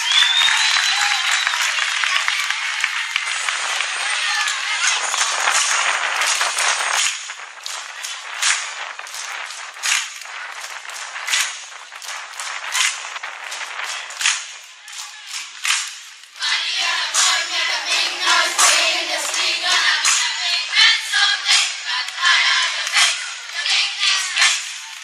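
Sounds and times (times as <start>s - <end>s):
audience applause: 0.0s - 20.6s.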